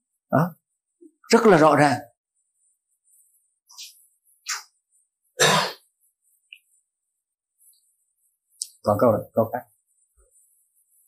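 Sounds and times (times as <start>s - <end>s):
man clearing his throat: 5.4s - 5.8s.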